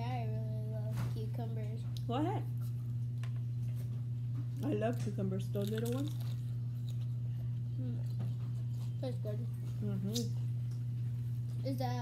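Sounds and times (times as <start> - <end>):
steady low hum: 0.0 - 12.0
chewing cucumber: 5.6 - 11.6.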